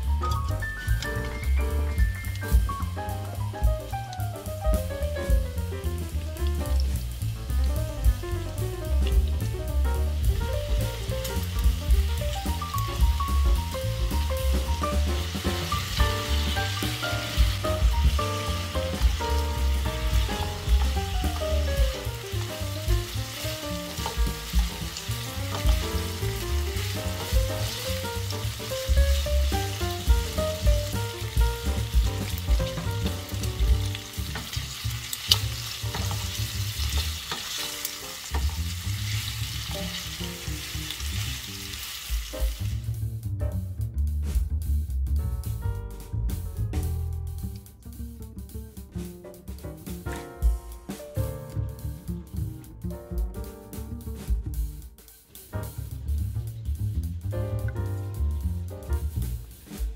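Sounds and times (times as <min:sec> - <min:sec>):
meat sizzling in a frying pan: 0:00.0 - 0:43.0
spatula stirring in a pan: 0:15.4 - 0:41.4.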